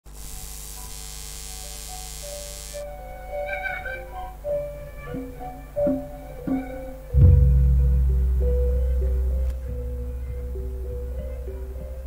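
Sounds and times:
mains hum: 0.1 - 12.0
tape hiss: 0.1 - 12.0
bamboo flute notes: 2.4 - 12.0.

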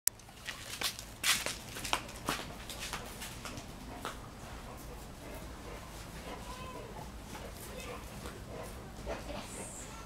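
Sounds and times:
footsteps approaching: 0.2 - 9.9.

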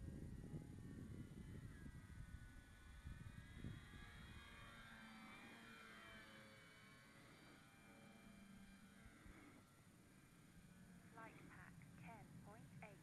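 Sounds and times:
wind rumble on microphone: 0.0 - 4.9
distant model plane motor whining: 0.0 - 11.1.

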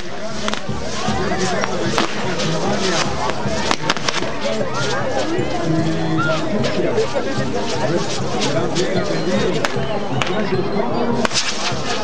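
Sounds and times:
fireworks cracking: 0.0 - 10.5, 11.2 - 12.0
crowd voices: 0.0 - 12.0
music: 0.0 - 12.0.

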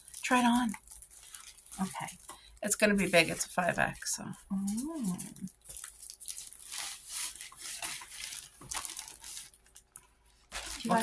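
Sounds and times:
plastic bag rustling and crinkling: 0.0 - 11.0.

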